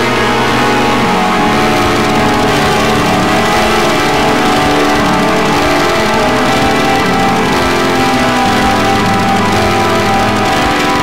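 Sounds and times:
droning noise music over hiss: 0:00.0 - 0:11.0.

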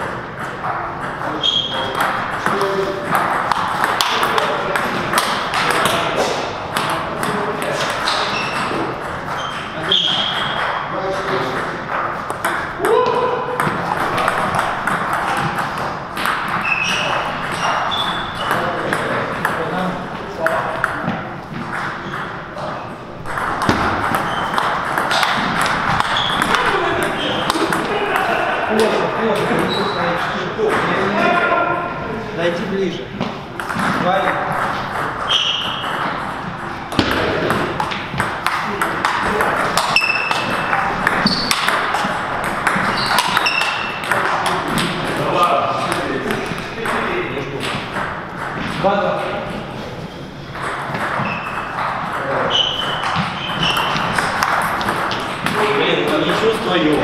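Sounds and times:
murmur of voices: 0:00.0 - 0:10.1, 0:26.0 - 0:34.6
ping pong ball hitting rackets: 0:00.0 - 0:31.1, 0:33.2 - 0:49.7, 0:50.5 - 0:57.0
ping pong ball bouncing on table: 0:00.4 - 0:06.0, 0:06.7 - 0:19.8, 0:20.4 - 0:22.4, 0:23.2 - 0:31.0, 0:33.2 - 0:45.2, 0:45.8 - 0:49.6, 0:50.6 - 0:56.4.

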